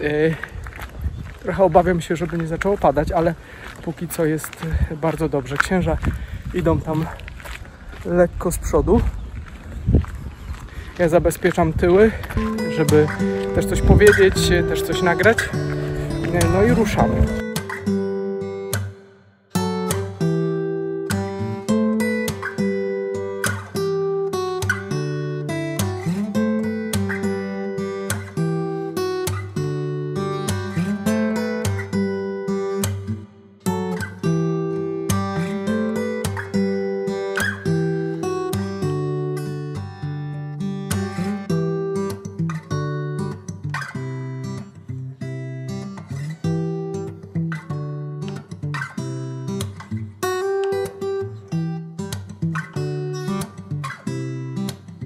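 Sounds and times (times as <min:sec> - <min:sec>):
acoustic guitar music: 0:11.1 - 0:55.0.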